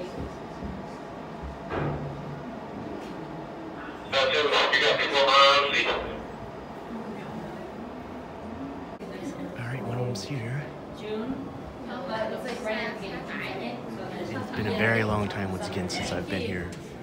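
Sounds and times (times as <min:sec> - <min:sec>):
lobby background noise: 0:00.0 - 0:17.0.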